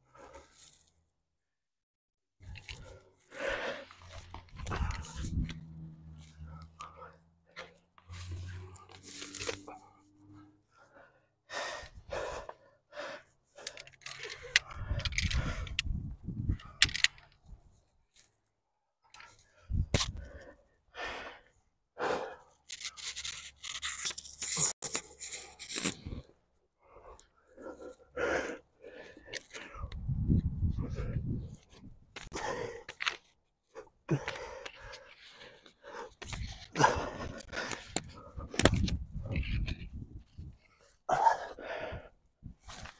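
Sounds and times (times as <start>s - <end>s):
person breathing hard: 0.0s - 0.9s, 2.4s - 17.0s, 19.2s - 22.7s, 26.8s - 39.5s, 40.4s - 42.9s
low rumbles: 4.0s - 8.9s.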